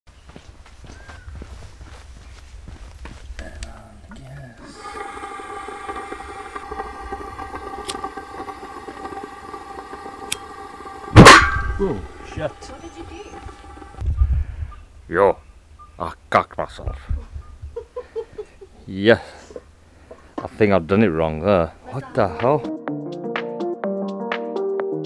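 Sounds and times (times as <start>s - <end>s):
gas hissing with whistle: 4.6s - 14.0s
gas igniting with loud bang: 4.6s - 14.0s.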